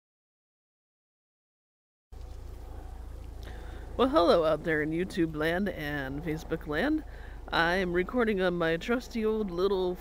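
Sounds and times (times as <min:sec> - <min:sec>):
low rumble: 0:02.2 - 0:10.0.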